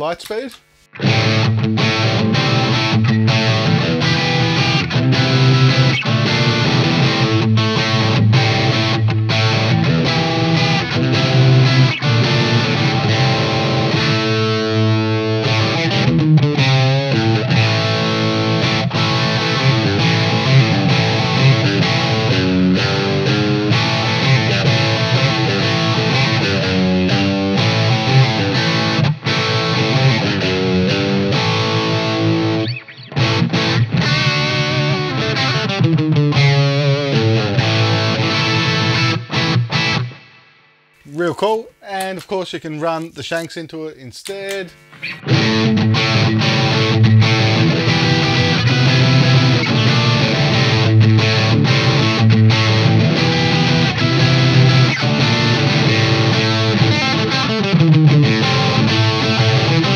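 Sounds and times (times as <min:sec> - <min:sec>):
overdriven electric guitar: 0:00.2 - 0:41.2, 0:44.2 - 0:59.9.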